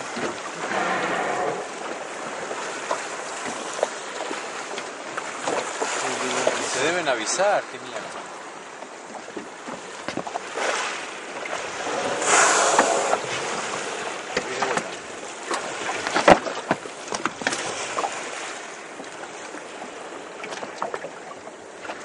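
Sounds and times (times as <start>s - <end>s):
wind on microphone: 0.0s - 3.8s, 10.6s - 15.0s
water lapping against boat hull: 0.0s - 22.0s.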